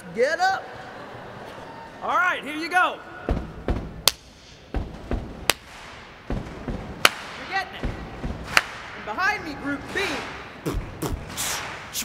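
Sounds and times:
low foot stomps: 3.3 - 9.0
sharp hand clap: 7.0 - 7.4, 8.5 - 9.0.

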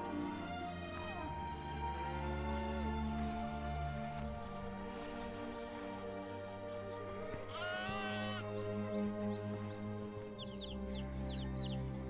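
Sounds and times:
background music: 0.0 - 12.0
lamb bleating: 7.5 - 8.4.

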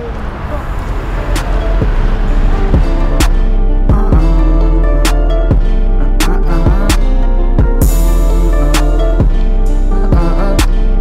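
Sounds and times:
music: 0.9 - 11.0.

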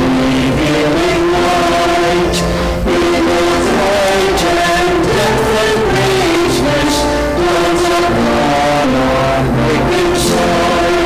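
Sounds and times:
instrumental accompaniment: 0.0 - 11.0
small group singing a hymn: 0.0 - 11.0.

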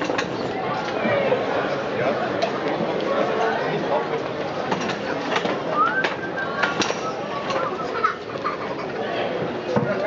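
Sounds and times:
murmur of voices: 0.0 - 10.0
rising whistle-like call: 5.8 - 7.2.

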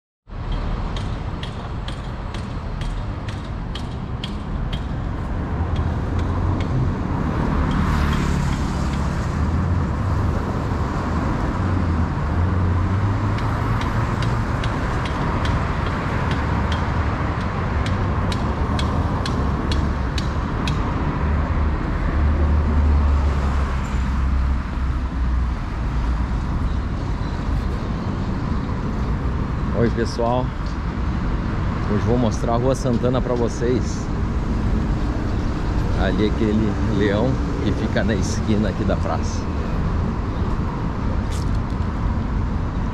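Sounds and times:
road traffic rumble: 0.3 - 42.9.

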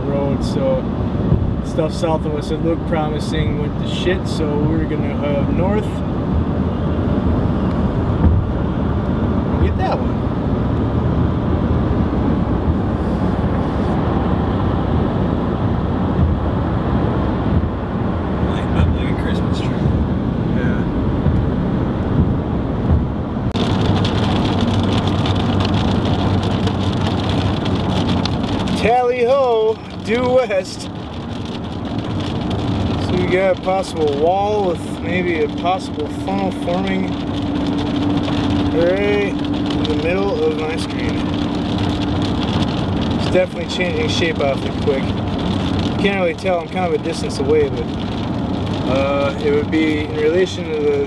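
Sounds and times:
car road noise: 0.0 - 51.0.

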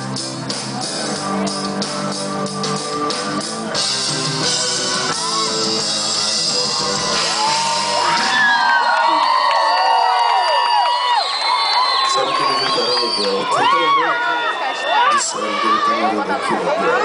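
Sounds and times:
live reggae band: 0.0 - 8.8
crowd whooping shouting and singing: 3.4 - 17.0.

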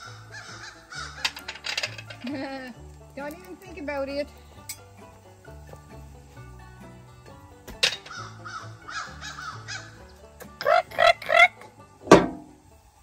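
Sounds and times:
crows cawing: 0.0 - 1.6, 8.0 - 11.6
background music: 0.0 - 13.0.

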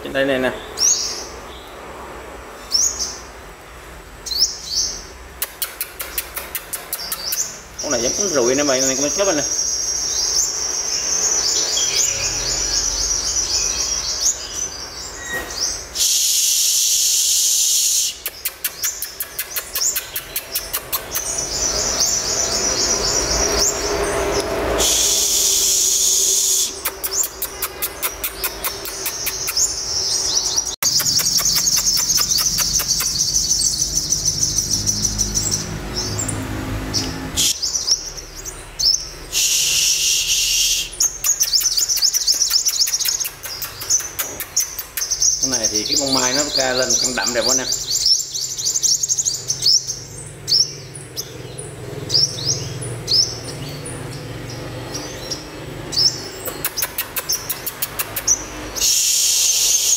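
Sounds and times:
sunbirds twittering trills: 0.0 - 59.9
loud hissing bursts: 15.9 - 18.4, 24.6 - 27.2, 39.3 - 41.2, 58.8 - 59.9.

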